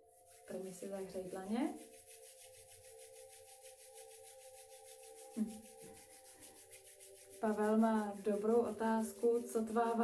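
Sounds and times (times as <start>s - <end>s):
faint background music: 0.0s - 10.0s
palms rubbing together: 0.0s - 10.0s.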